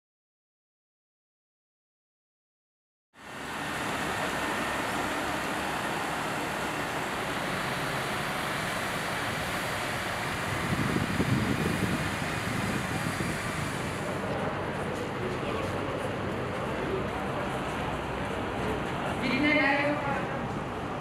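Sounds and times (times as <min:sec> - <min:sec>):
water cannons spraying mist: 0:03.2 - 0:14.5
truck engines running: 0:03.2 - 0:21.0.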